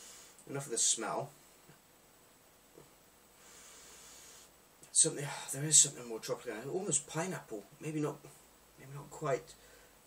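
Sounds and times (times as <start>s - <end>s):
person sniffing: 3.4s - 4.6s.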